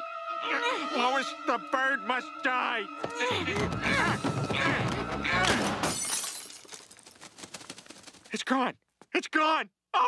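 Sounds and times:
people grunting and shouting: 3.0 - 5.8.

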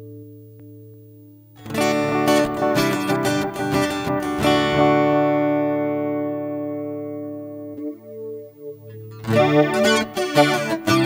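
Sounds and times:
acoustic guitar chord ringing: 1.6 - 11.0.

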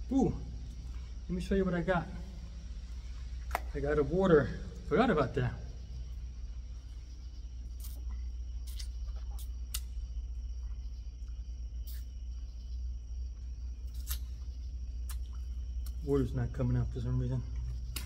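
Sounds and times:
steady low rumble: 0.0 - 18.0.

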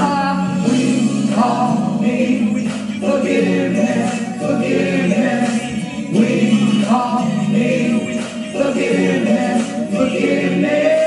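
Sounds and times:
karaoke backing track: 0.0 - 11.0
woman singing worship song: 0.0 - 11.0.

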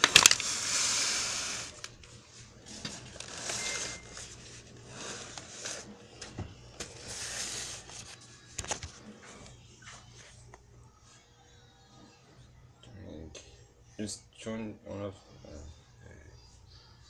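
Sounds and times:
rubbing scraping noises: 6.9 - 8.1.

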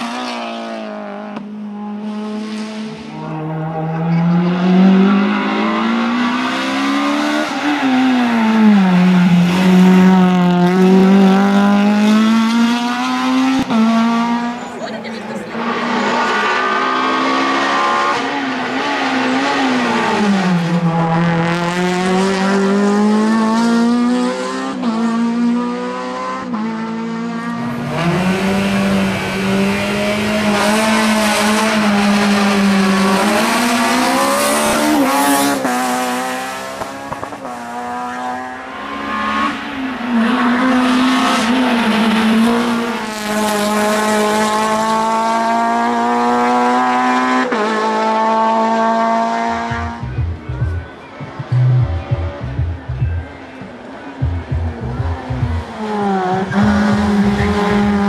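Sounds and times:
race car engine at high revs: 0.0 - 58.0.

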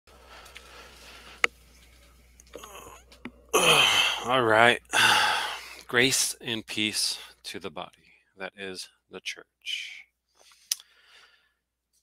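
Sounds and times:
man's drawn-out vocal sound: 2.6 - 5.6
man speaking: 3.8 - 5.1, 5.9 - 10.1.

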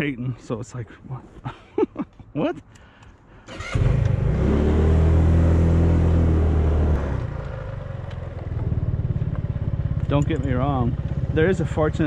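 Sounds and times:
motorcycle engine: 3.5 - 12.0.

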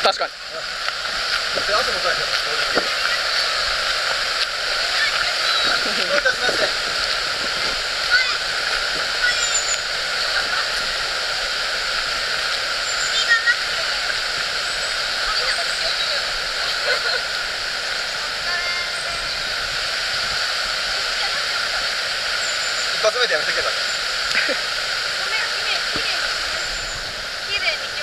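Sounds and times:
river water rushing: 0.0 - 28.0.

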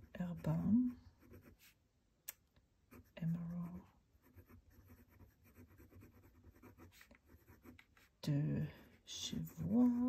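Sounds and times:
pen nib scratching paper: 0.0 - 1.8, 2.9 - 10.0.

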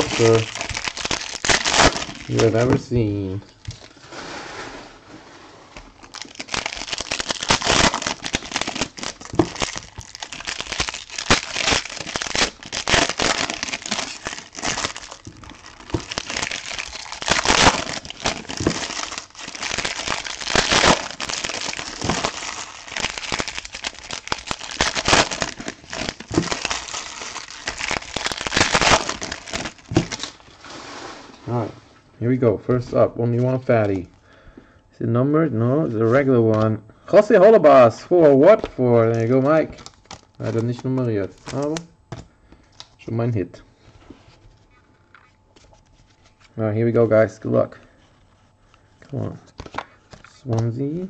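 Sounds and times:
foil wrappers crinkling: 0.0 - 4.0, 6.0 - 30.8, 38.5 - 41.9.

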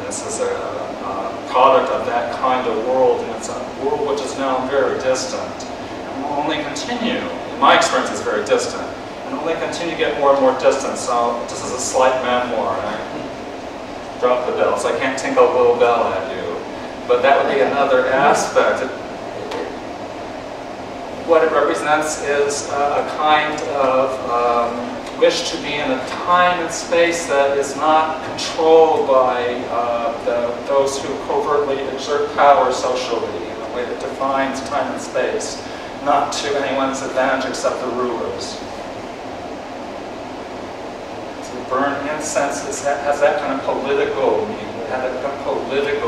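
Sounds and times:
ventilation hiss: 0.0 - 46.0.

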